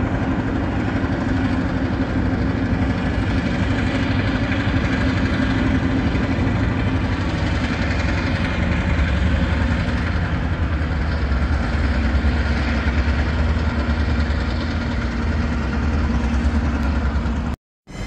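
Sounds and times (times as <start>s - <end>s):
diesel locomotive engine rumble: 0.0s - 18.0s.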